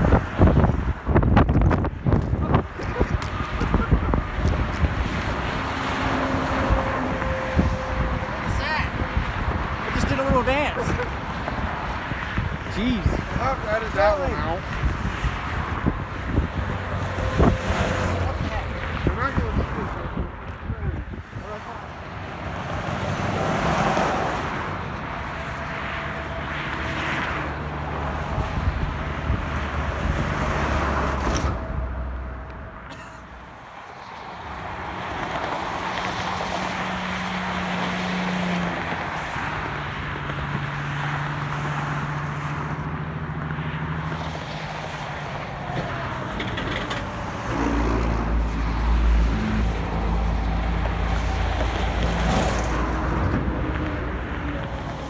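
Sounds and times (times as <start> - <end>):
highway traffic passing: 0.0 - 55.0.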